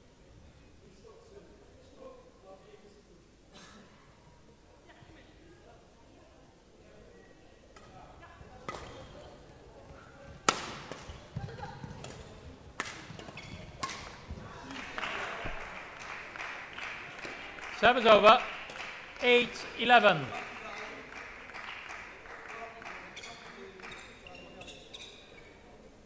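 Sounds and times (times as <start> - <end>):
wash of voices in hall: 0.8 - 26.0
racket striking shuttlecock: 8.6 - 9.1, 10.4 - 11.3, 12.0 - 14.4.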